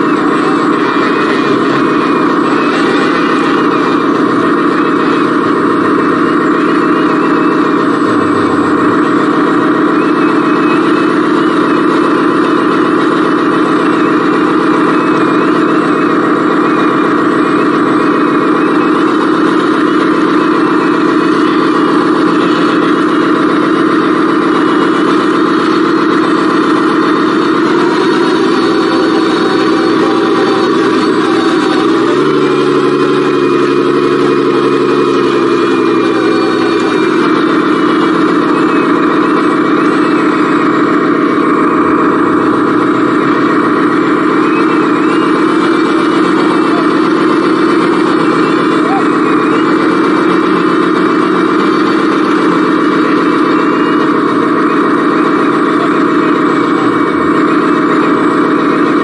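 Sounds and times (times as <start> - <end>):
toy truck motor drone: 0.0 - 59.0.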